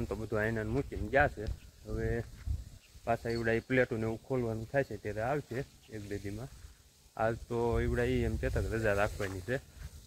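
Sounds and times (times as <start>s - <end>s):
man speaking: 0.0s - 2.3s, 3.1s - 6.5s, 7.2s - 9.6s.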